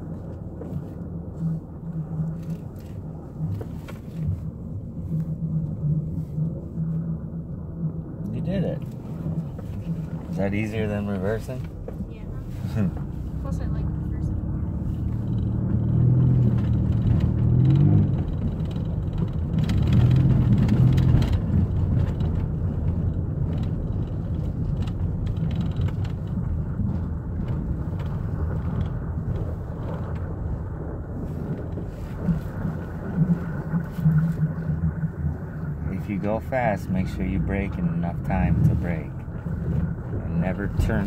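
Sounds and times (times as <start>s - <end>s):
van engine accelerating: 0.0s - 41.0s.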